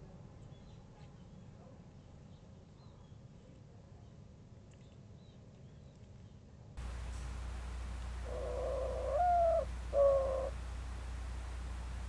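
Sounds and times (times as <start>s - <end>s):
mourning dove cooing: 6.8s - 12.0s.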